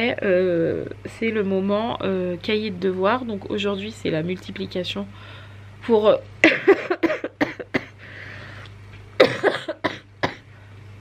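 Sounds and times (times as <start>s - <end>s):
woman coughing: 6.4s - 8.0s, 9.2s - 10.5s.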